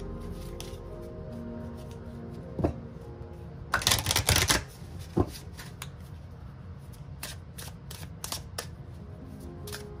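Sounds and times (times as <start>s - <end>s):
cards riffling: 3.7s - 5.9s.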